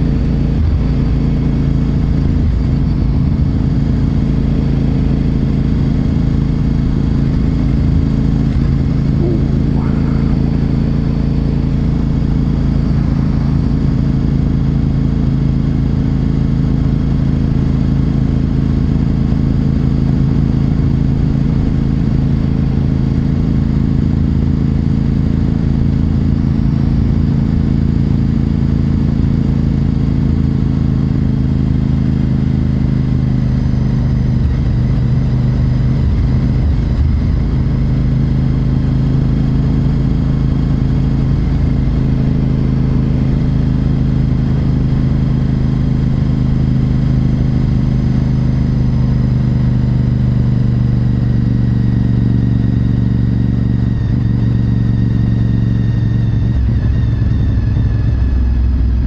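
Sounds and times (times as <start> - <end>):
motorcycle engine cruising: 0.0 - 59.0.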